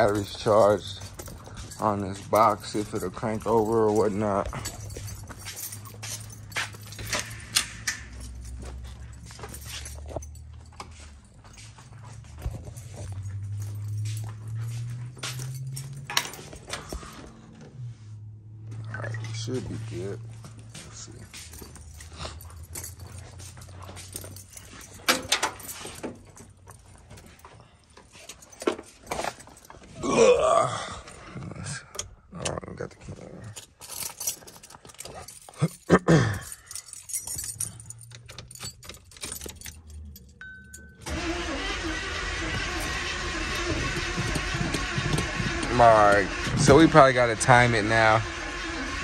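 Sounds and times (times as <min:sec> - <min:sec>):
car engine cranking: 0:00.0 - 0:10.9, 0:12.4 - 0:17.8, 0:41.0 - 0:49.0
knocks clicks and rustling: 0:00.0 - 0:10.9, 0:11.9 - 0:17.7, 0:20.3 - 0:30.0, 0:33.5 - 0:41.3, 0:42.4 - 0:49.0.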